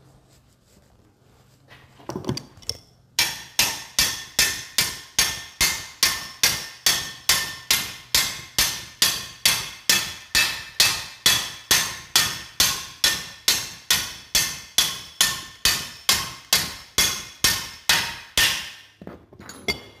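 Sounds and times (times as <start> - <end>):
hammer striking steel bolt: 3.2 - 18.9.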